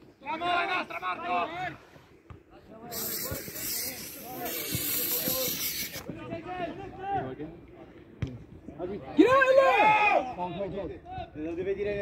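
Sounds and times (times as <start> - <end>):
faint voices: 1.7 - 9.1
aerosol spray can hissing: 2.9 - 6.0.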